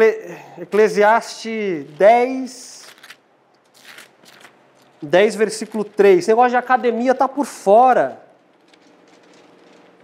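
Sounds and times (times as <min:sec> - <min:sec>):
bible pages being turned: 0:00.7 - 0:10.0.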